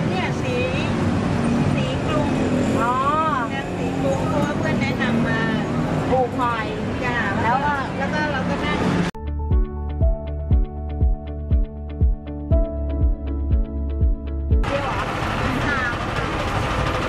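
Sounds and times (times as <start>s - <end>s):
people talking: 0.0s - 1.0s, 1.7s - 9.1s, 14.6s - 16.0s
traffic hum: 0.0s - 9.2s.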